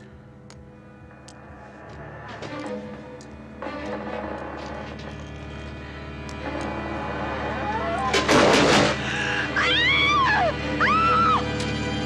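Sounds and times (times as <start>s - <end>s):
loud crash: 7.1s - 9.1s
high-pitched scream: 7.4s - 8.3s, 9.6s - 11.5s.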